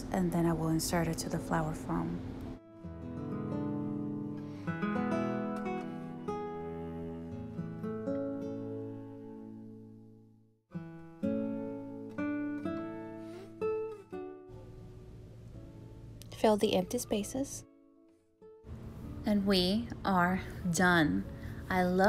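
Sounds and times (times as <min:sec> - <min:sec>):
plucked acoustic guitar music: 0:00.1 - 0:22.0.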